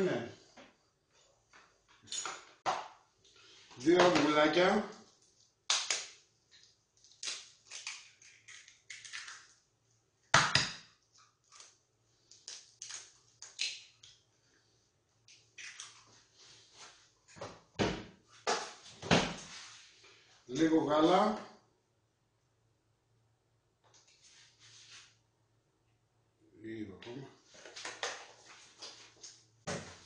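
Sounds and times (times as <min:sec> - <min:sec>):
eggshells cracking: 0:07.0 - 0:09.6.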